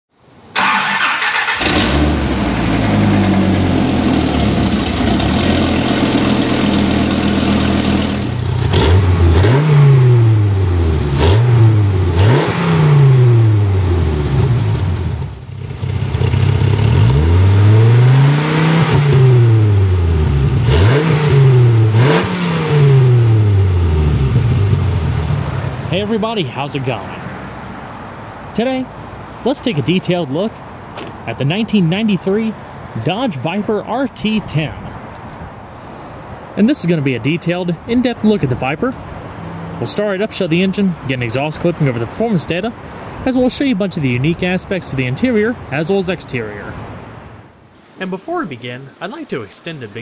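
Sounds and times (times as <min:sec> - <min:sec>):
car engine starting and revving: 0:00.5 - 0:26.2.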